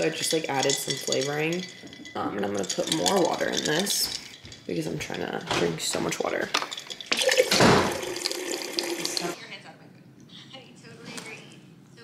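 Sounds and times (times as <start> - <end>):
water pouring into glass jar: 0.0 - 5.1, 6.1 - 9.4.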